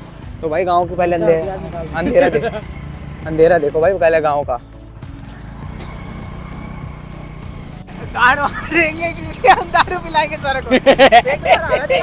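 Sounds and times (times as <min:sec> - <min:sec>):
men laughing and talking loudly: 0:00.4 - 0:04.6, 0:05.3 - 0:12.0.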